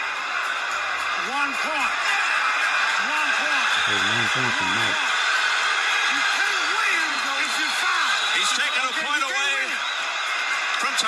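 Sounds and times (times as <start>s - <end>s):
arena crowd noise: 0.0s - 11.0s
men talking: 1.2s - 5.1s, 6.1s - 9.8s.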